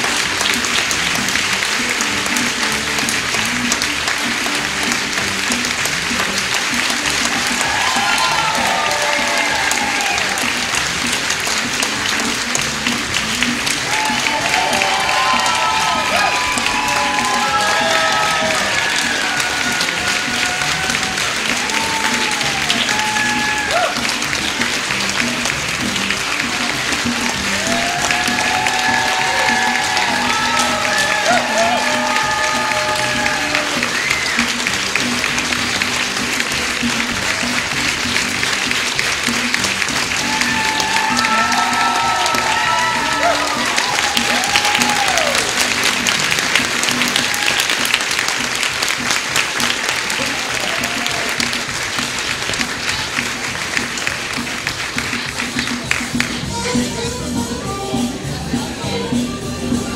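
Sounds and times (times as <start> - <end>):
audience applauding: 0.0 - 57.4
music playing: 0.0 - 59.9.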